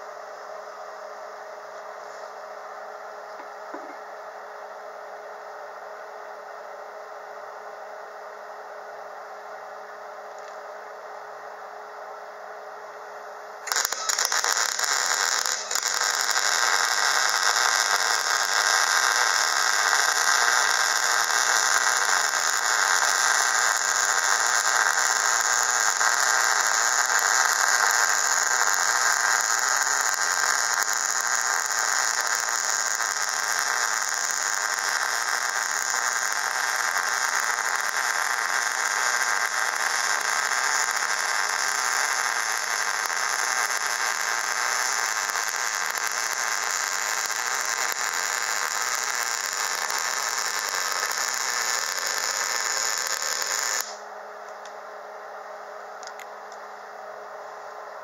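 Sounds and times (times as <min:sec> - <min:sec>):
electric arc welding hiss: 0:13.6 - 0:54.0.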